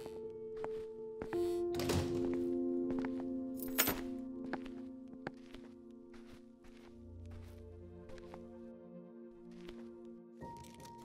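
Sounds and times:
slow sustained chord music: 0:00.0 - 0:11.0.

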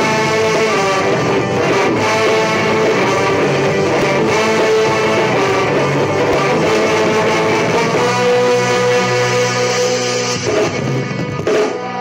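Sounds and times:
electric guitar strumming: 0:00.0 - 0:12.0
ska band playing: 0:00.0 - 0:12.0.

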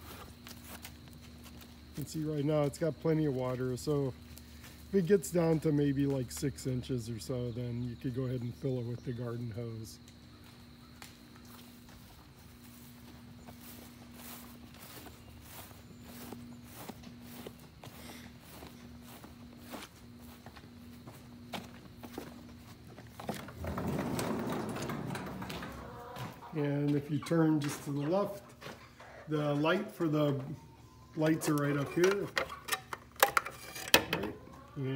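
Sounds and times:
footsteps on grass: 0:00.0 - 0:09.4, 0:10.0 - 0:28.8.

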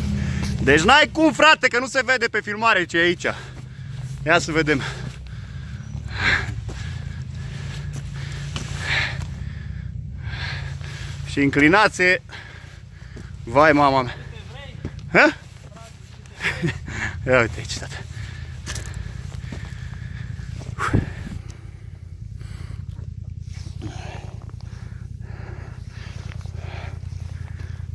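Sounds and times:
engine running at low revs: 0:00.0 - 0:27.9.

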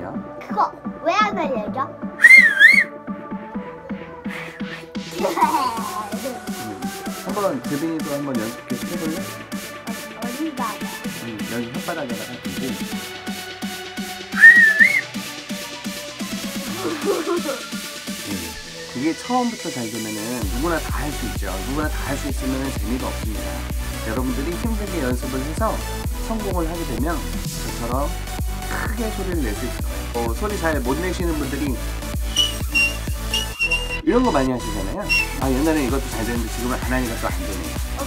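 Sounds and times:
loud finger whistle: 0:02.2 - 0:03.0, 0:14.3 - 0:15.1, 0:32.2 - 0:34.1, 0:35.0 - 0:35.4
electronic music with steady beat: 0:32.1 - 0:34.1.

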